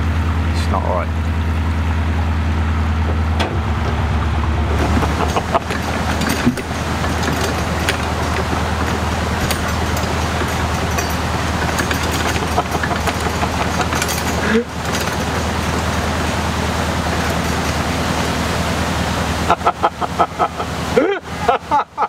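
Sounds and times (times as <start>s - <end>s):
diesel engine idling: 0.0s - 21.8s.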